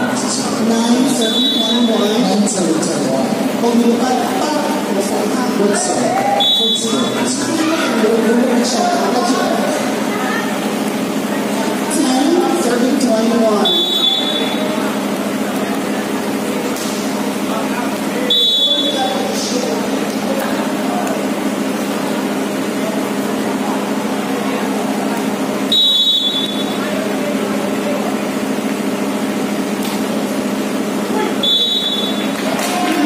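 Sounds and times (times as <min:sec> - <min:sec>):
crowd chatter: 0:00.0 - 0:33.0
referee's whistle blasts: 0:01.2 - 0:02.0, 0:06.4 - 0:07.1, 0:13.6 - 0:14.6, 0:18.3 - 0:19.1, 0:25.7 - 0:26.8, 0:31.4 - 0:32.4.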